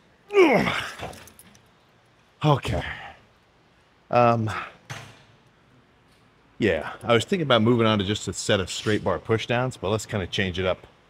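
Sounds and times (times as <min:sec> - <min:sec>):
person grunting: 0:00.3 - 0:01.2
metallic jangle of cable handle: 0:00.9 - 0:01.8.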